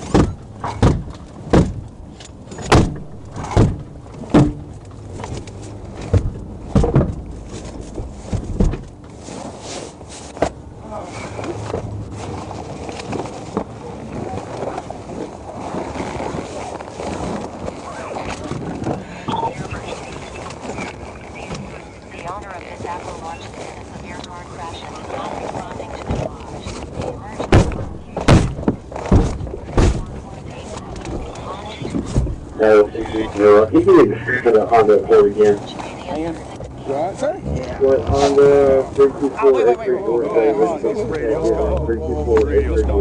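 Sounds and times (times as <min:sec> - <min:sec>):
sharp irregular thumps: 0:00.0 - 0:09.1, 0:27.4 - 0:30.3
steady murmur of noise: 0:00.0 - 0:43.0
faint muffled voices: 0:13.7 - 0:43.0.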